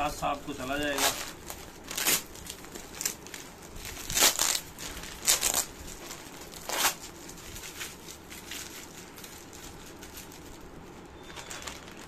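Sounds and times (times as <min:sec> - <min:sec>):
plastic bag crinkling: 0:00.1 - 0:12.0.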